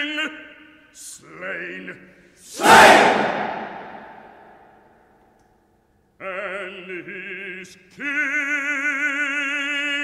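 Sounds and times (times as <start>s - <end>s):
orchestra and chorus crash: 2.5s - 4.8s.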